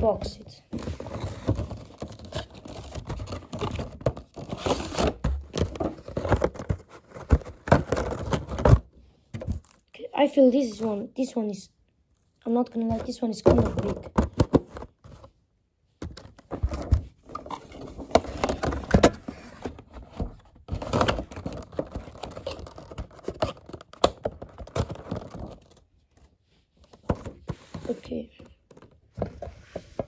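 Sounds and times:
hands handling plastic and cardboard: 0.0s - 9.9s, 12.2s - 30.0s.

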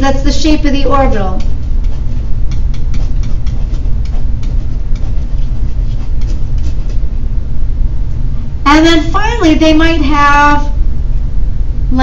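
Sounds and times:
person narrating: 0.0s - 1.5s, 8.7s - 10.8s
steady low rumble: 0.0s - 12.0s.

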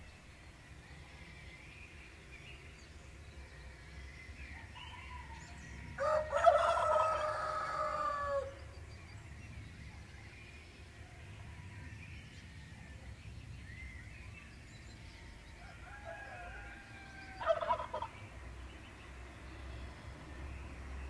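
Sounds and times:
faint songbird chirping: 0.0s - 21.0s
rooster crowing: 4.6s - 8.5s, 15.5s - 18.0s.

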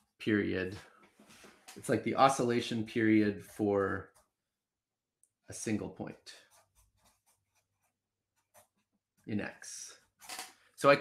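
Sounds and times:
marker scratching on paper: 6.4s - 9.3s.

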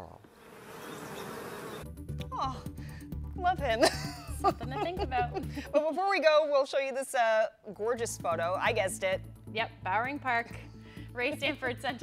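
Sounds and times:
honeybees buzzing: 0.0s - 2.0s.

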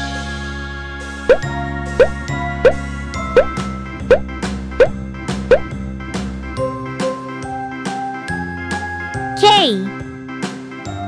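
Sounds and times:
cheerful children's music: 9.4s - 9.9s.

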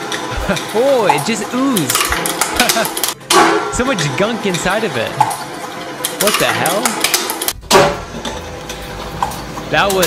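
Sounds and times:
shredder cutters clicking: 0.1s - 4.6s.

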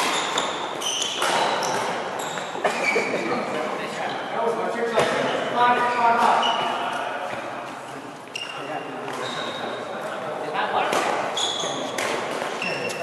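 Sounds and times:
racket striking shuttlecock: 0.0s - 2.0s
sneakers squeaking on court: 0.0s - 3.2s, 8.3s - 9.8s, 11.3s - 13.0s
voices echoing in hall: 0.0s - 13.0s.

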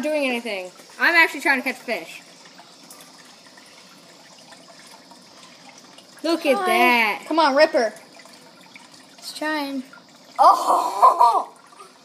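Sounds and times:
trickle of falling water: 0.0s - 12.0s.

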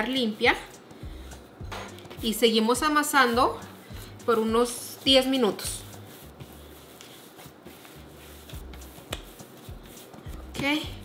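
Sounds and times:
hands kneading dough: 0.0s - 11.0s.

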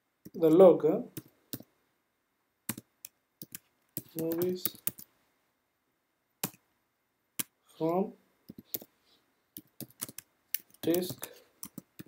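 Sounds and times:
computer keyboard typing: 2.7s - 5.1s, 8.5s - 8.9s, 9.6s - 12.0s.

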